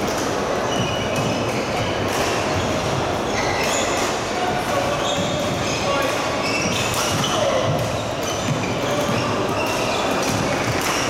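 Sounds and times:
busy indoor hall din: 0.0 - 11.0
shoes squeaking on court floor: 0.0 - 11.0.

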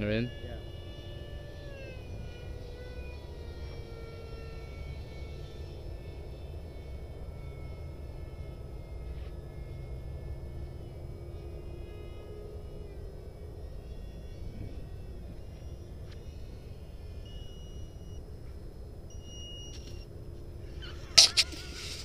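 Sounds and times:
low rumble: 0.0 - 22.0
model jet fan whine: 0.0 - 22.0.

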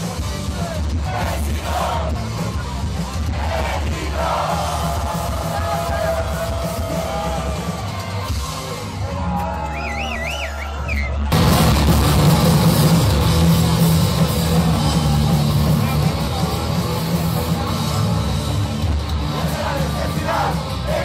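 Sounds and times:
punk rock band playing live: 0.0 - 10.3, 11.3 - 21.0
crowd yelling: 0.4 - 21.0
low guitar and bass drone: 11.2 - 21.0.

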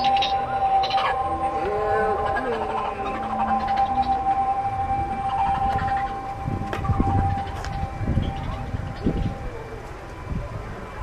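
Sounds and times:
steady siren-like tone: 0.0 - 11.0.

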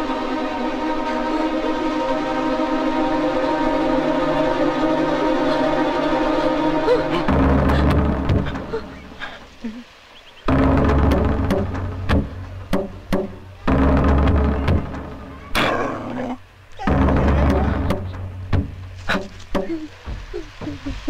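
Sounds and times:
deep drum-like hits with held tones: 7.3 - 8.8, 10.4 - 16.0, 16.8 - 21.0.

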